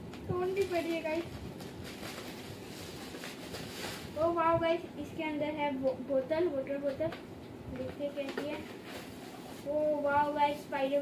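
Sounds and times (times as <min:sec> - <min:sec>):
plastic wrapping crinkling: 0:00.3 - 0:04.4.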